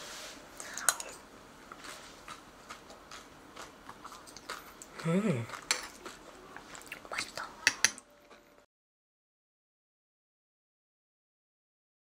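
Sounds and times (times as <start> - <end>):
person chewing: 0.6 - 8.5.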